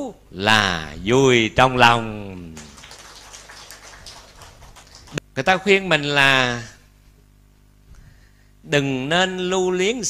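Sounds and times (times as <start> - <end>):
audience applauding: 2.4 - 5.2.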